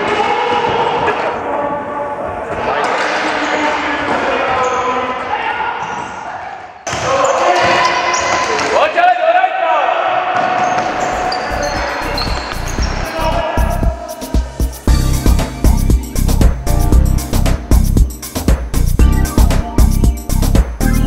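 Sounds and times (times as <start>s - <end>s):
voices echoing in sports hall: 0.0s - 14.9s
music: 11.1s - 21.0s
steady low beat: 13.6s - 21.0s.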